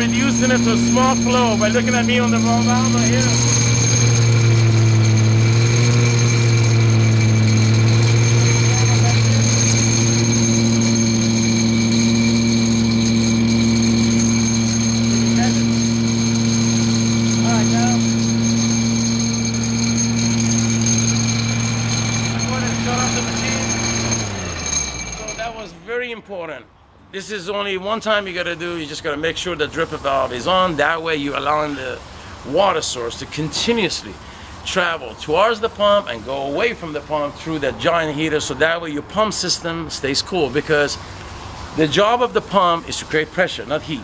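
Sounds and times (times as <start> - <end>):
small gasoline engine running: 0.0 - 25.7.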